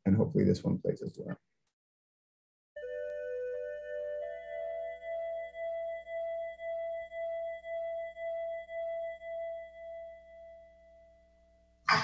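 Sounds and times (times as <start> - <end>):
pulsing held musical tone: 2.8 - 11.6.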